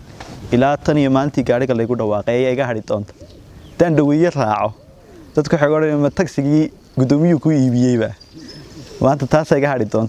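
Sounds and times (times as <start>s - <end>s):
man speaking: 0.5s - 3.1s, 3.8s - 8.2s, 8.9s - 10.0s.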